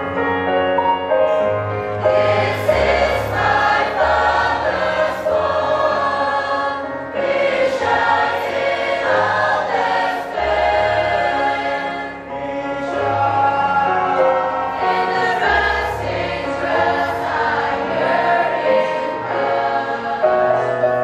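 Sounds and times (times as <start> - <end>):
youth choir singing: 2.0 - 21.0.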